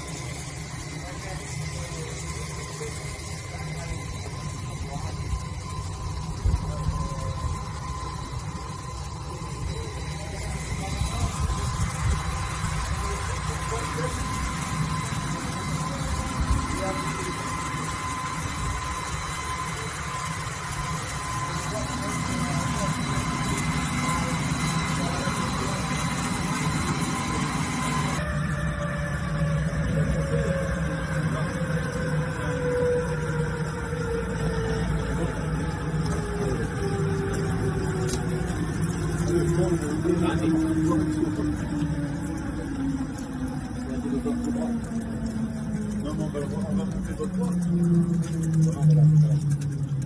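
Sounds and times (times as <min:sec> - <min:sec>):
tone falling in pitch: 0:00.0 - 0:46.1
low hum: 0:00.0 - 0:50.0
wire saw machine whine: 0:00.0 - 0:50.0.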